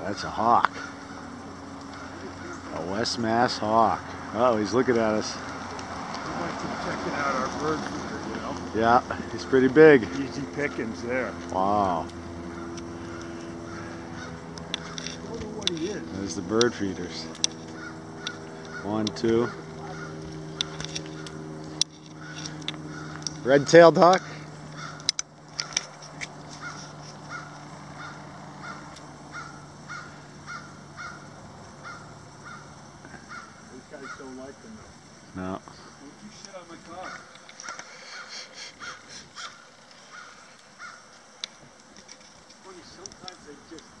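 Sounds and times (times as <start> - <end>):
crows cawing: 0.0 - 34.7, 35.6 - 43.8
low machine hum: 0.0 - 44.0.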